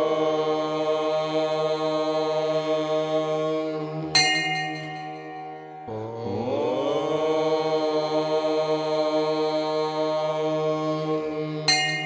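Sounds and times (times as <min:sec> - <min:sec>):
long chanted tone: 0:00.0 - 0:12.0
bright ringing strike: 0:04.2 - 0:06.0, 0:11.7 - 0:12.0.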